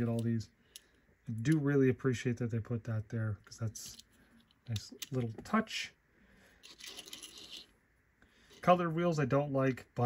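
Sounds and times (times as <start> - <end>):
toy car scraping on tabletop: 6.6 - 7.7.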